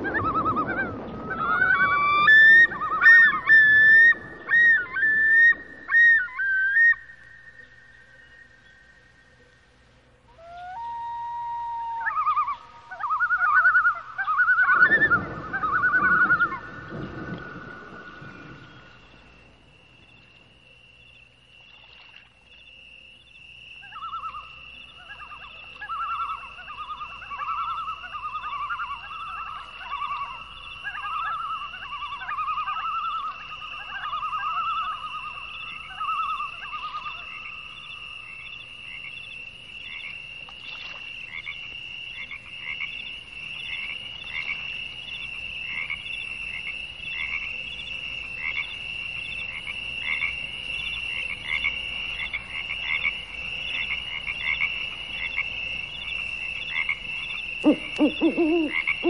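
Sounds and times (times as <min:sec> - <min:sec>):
lower pulsing animal call: 0:00.0 - 0:07.7, 0:10.3 - 0:18.8, 0:23.8 - 0:37.4, 0:57.2 - 0:59.0.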